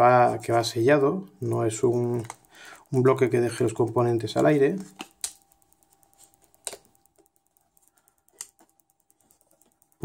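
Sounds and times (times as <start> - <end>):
faint ticks: 1.4 - 10.0.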